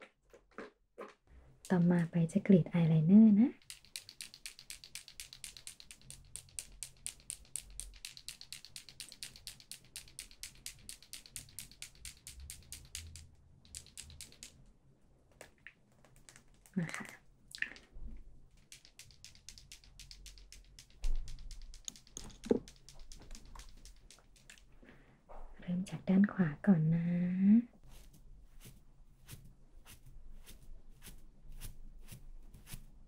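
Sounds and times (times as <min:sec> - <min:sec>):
rapid tapping clicks: 0:03.5 - 0:14.6, 0:18.6 - 0:24.7.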